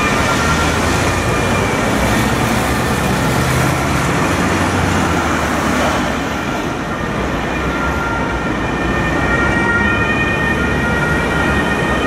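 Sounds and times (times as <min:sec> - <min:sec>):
city traffic rumble: 0:00.0 - 0:12.0
distant two-tone ambulance siren: 0:00.0 - 0:12.0.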